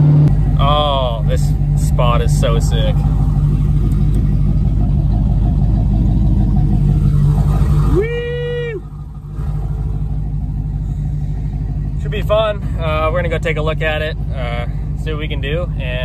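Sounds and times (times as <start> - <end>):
pickup engine droning: 0.0 - 16.0.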